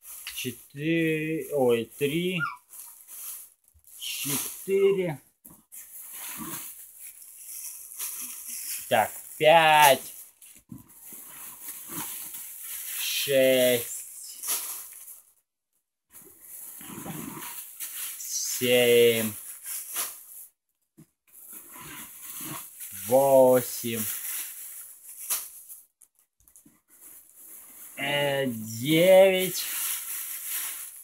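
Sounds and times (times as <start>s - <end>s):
plastic packaging crinkling: 1.0s - 5.0s, 5.6s - 13.7s, 16.4s - 18.3s, 21.3s - 31.0s
dog whining faintly: 2.4s - 2.7s.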